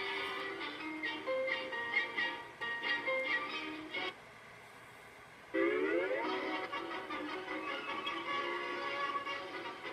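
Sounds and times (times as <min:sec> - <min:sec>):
faint background hiss: 0:00.0 - 0:09.9
cartoon music: 0:05.6 - 0:09.9.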